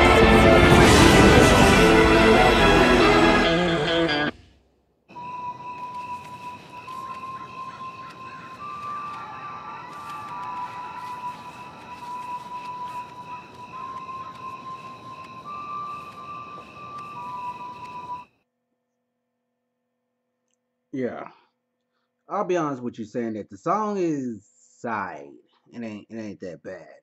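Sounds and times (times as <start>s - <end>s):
electronic beeping tones: 5.2s - 18.3s
scattered clicks: 5.8s - 18.2s.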